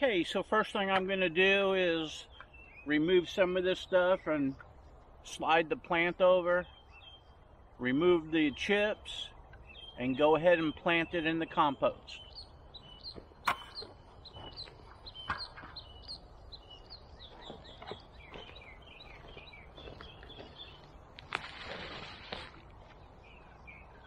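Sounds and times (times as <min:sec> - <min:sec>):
small birds chirping: 0:00.0 - 0:24.0
boots rustling in mulch: 0:17.2 - 0:23.3.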